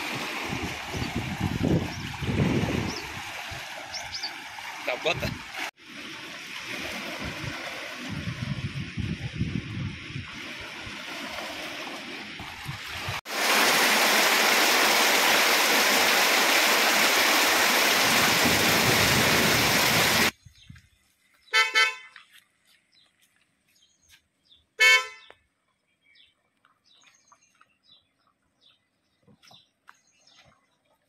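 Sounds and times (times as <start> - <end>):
car horn beeps: 21.5 - 22.1, 24.8 - 25.3.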